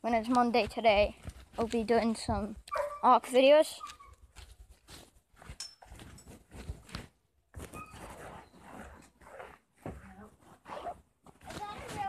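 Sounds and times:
phone rubbing against fabric: 7.6s - 11.0s.

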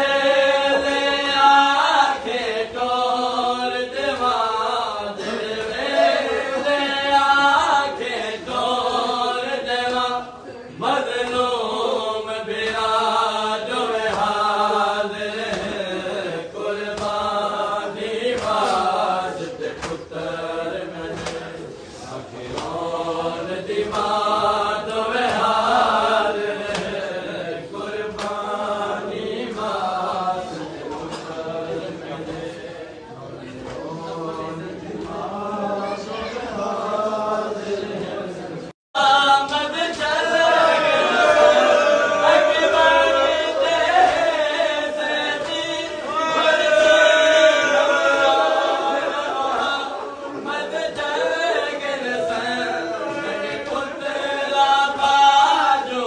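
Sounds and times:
men chanting a lament: 0.0s - 56.0s.

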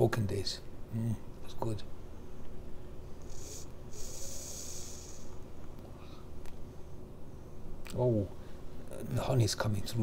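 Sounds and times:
hissing draw on a vape: 3.2s - 5.4s.

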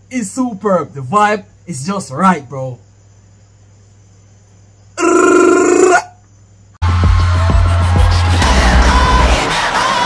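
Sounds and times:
loud horn-like tone: 5.0s - 6.1s
loud music: 6.8s - 10.0s.

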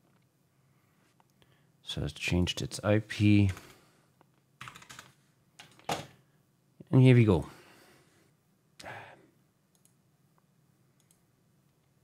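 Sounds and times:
faint mouse clicks: 9.7s - 12.0s.

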